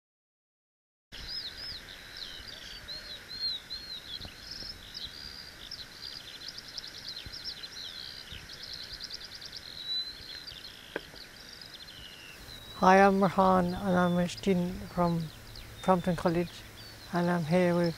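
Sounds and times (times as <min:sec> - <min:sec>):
songbird warbling: 0:01.2 - 0:17.9
steady outdoor hiss: 0:01.2 - 0:17.9.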